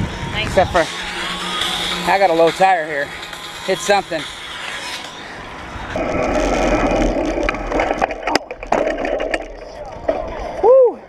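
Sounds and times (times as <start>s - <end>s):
bicycle tyres rolling on pavement: 4.6s - 11.0s.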